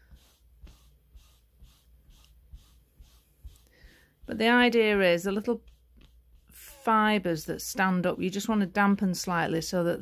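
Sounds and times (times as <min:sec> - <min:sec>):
velvet rubbing strokes: 0:00.0 - 0:07.9.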